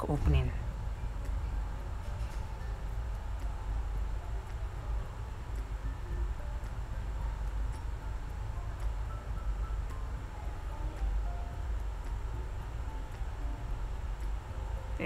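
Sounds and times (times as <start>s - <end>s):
steady low rumble: 0.0s - 15.0s.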